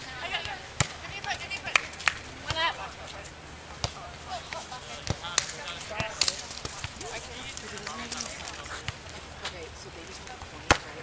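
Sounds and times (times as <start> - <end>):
distant voices: 0.0 - 11.0
hands slapping a volleyball: 0.4 - 2.6, 3.8 - 9.0.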